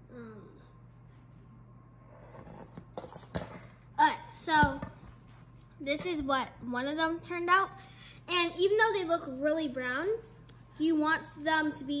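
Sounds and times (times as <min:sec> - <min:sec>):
girl speaking: 0:04.0 - 0:05.0, 0:05.8 - 0:12.0.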